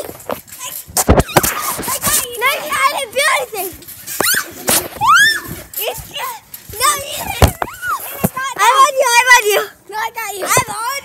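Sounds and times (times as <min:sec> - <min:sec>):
children squealing and shouting: 0:00.5 - 0:11.0.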